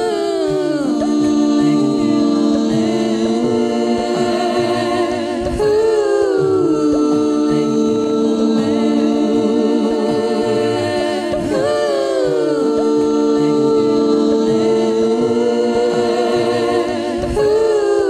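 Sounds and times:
sliding vocal line: 0.0 - 18.0
woman singing a cappella harmonies: 0.0 - 18.0.

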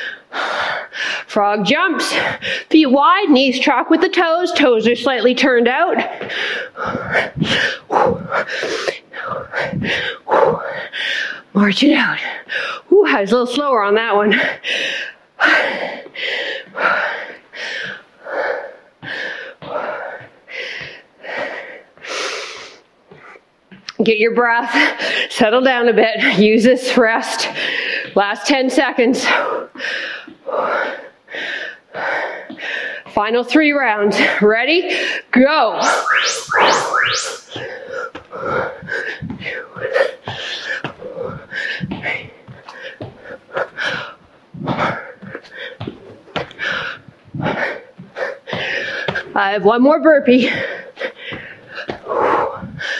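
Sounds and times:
woman breathing hard: 0.0 - 1.3, 2.1 - 2.7, 6.0 - 11.5, 12.3 - 13.0, 14.4 - 23.4, 27.4 - 28.2, 29.2 - 33.1, 37.6 - 49.4, 50.3 - 52.9
rising whooshes: 35.8 - 38.0.

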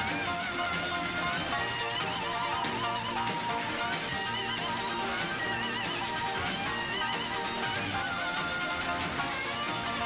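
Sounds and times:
pop-rock band playing: 0.0 - 10.0.

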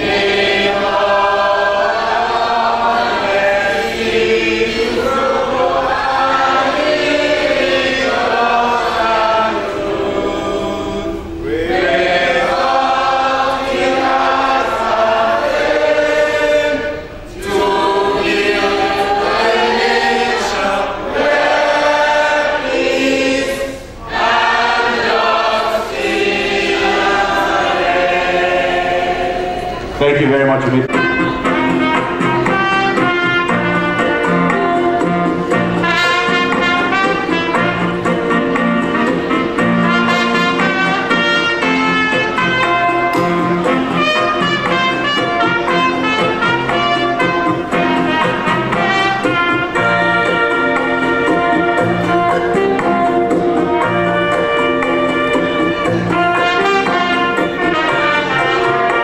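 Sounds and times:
group of people singing: 0.0 - 30.1, 31.0 - 59.0.

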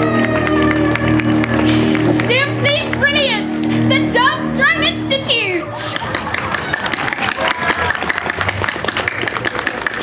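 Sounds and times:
audience applauding: 0.0 - 2.3, 5.8 - 10.0
crowd voices: 0.0 - 10.0.

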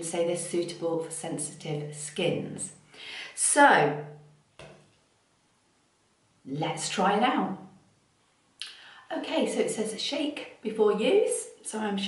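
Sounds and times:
woman speaking: 0.0 - 4.3, 6.5 - 7.8, 9.1 - 12.0.

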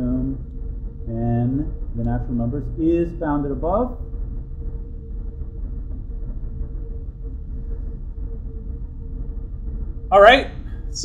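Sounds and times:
faint steady hum: 0.0 - 11.0
low room rumble: 0.0 - 11.0.

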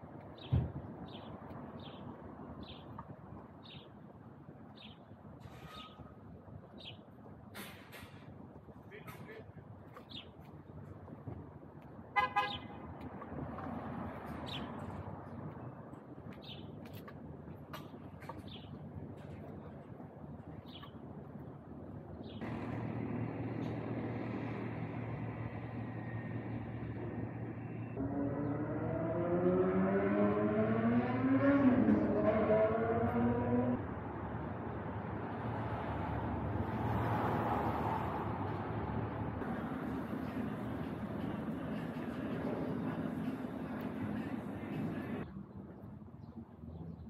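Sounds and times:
low city street noise: 0.0 - 47.0
vehicle horn toot: 12.2 - 12.8
passing vehicle engine hum: 22.4 - 45.3.

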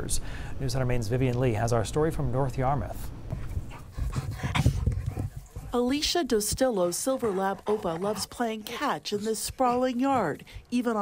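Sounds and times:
dog panting: 3.3 - 11.0.

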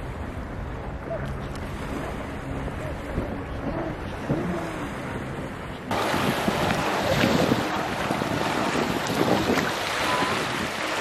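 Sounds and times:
lake waves lapping on shore: 0.0 - 11.0
wind buffeting microphone: 0.0 - 11.0.

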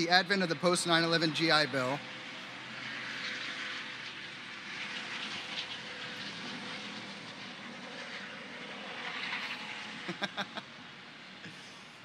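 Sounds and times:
aircraft passing overhead: 0.0 - 12.0.

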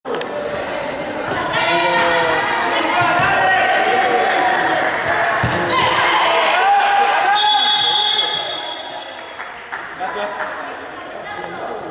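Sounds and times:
voices shouting in gymnasium: 0.4 - 11.9.

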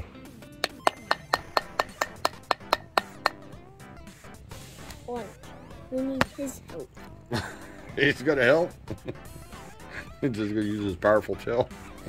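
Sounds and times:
hammer tapping chisel into sand block: 0.6 - 3.4.

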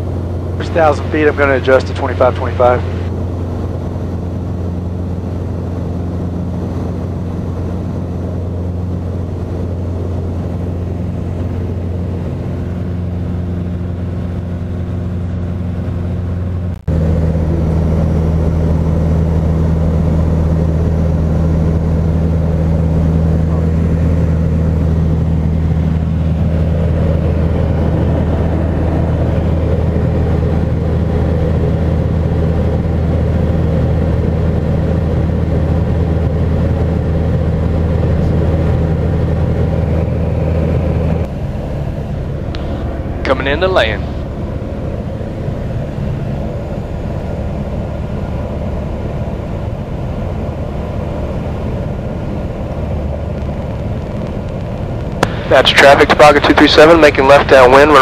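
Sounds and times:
light aircraft engine droning: 0.0 - 58.0.

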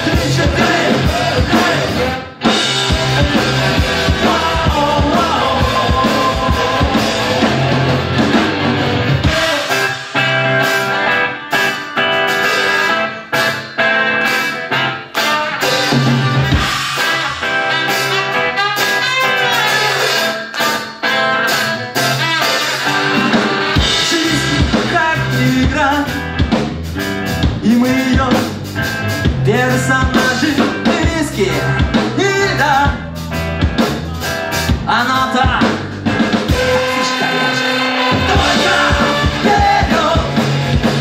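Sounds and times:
person singing: 0.0 - 8.0, 23.9 - 26.2, 36.5 - 40.6
ska-punk band playing: 0.0 - 41.0.

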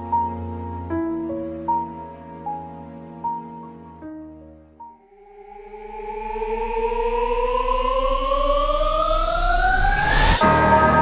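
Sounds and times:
synthetic tone rising in pitch: 5.0 - 11.0.

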